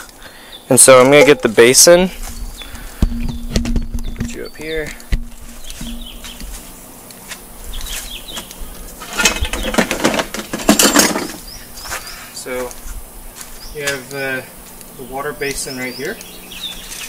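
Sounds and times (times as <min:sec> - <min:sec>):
small birds chirping: 0:00.0 - 0:17.0
rustling and scraping handling noise: 0:00.9 - 0:14.8.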